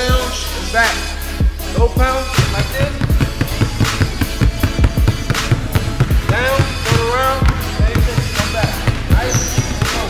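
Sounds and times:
basketballs dribbled on hardwood floor: 2.4 - 10.0.

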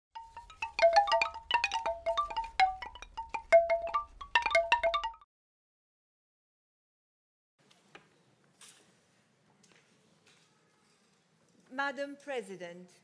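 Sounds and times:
bright chime jingle: 0.2 - 5.2.

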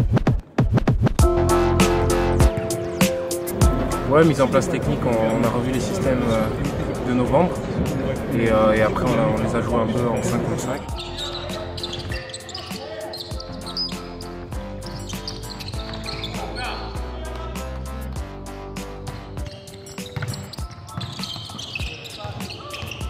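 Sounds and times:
background music with steady beat: 0.0 - 23.0
sneakers squeaking: 2.4 - 8.3, 9.0 - 17.9, 19.0 - 23.0
basketball bouncing on hardwood: 20.0 - 22.0.

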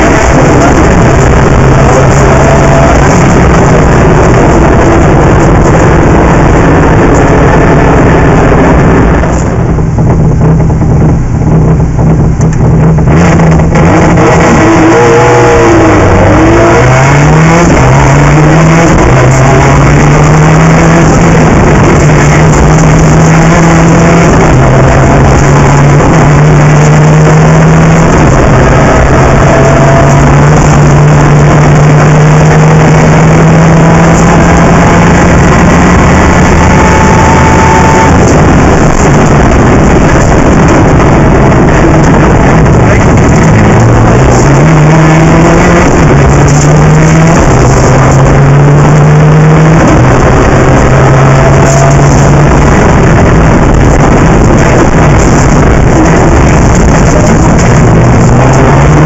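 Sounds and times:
rally car engine revving: 0.0 - 59.0.

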